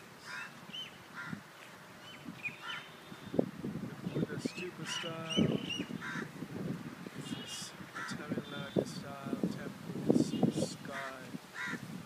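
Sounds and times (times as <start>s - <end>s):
crows cawing: 0.2s - 0.5s, 1.1s - 1.4s, 2.6s - 3.0s, 5.9s - 6.4s, 7.9s - 8.2s, 10.9s - 11.8s.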